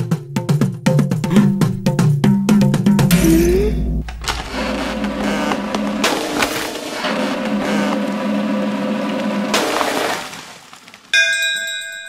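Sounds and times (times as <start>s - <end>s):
bell-like ding: 11.2s - 12.0s.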